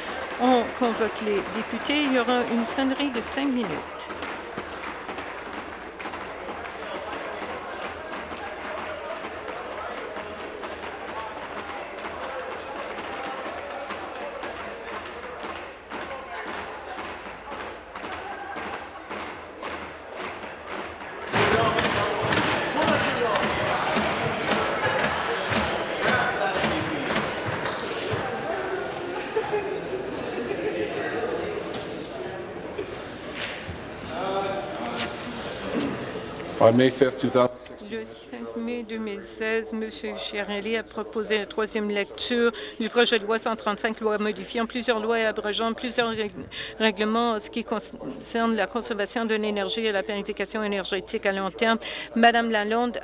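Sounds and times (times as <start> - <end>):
crowd chatter: 0.0 - 53.0.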